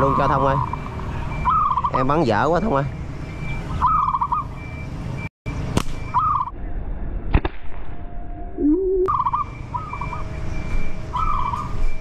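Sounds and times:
warbling bird call: 0.0 - 2.4, 3.4 - 4.6, 6.1 - 6.6, 8.6 - 11.8
slingshot snap: 5.7 - 6.0.

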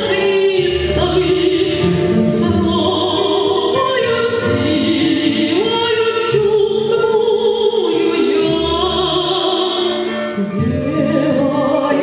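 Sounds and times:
instrumental accompaniment: 0.0 - 12.0
woman singing into a microphone: 0.0 - 12.0.

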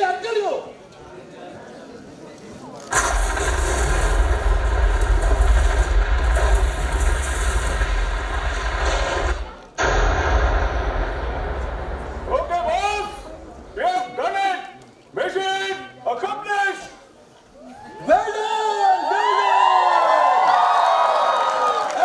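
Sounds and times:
deep rumbling sound effect: 2.9 - 13.8.

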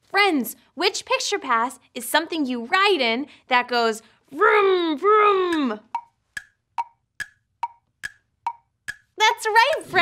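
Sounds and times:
tick-tock wood-block clicks: 5.5 - 9.9.

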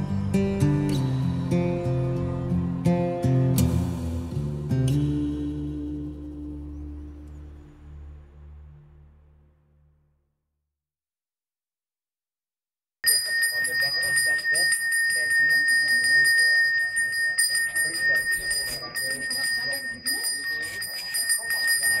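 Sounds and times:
hand bell ringing: 13.0 - 22.0.

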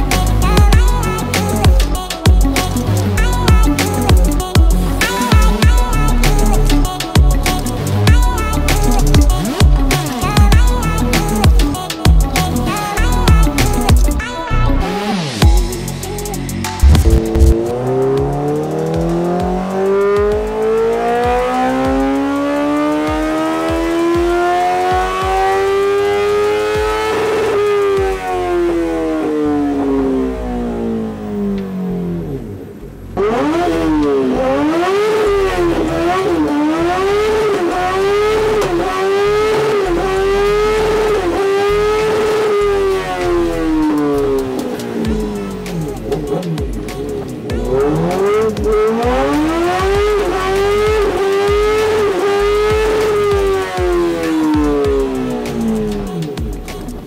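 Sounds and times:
motorcycle engine revving: 16.8 - 57.0.

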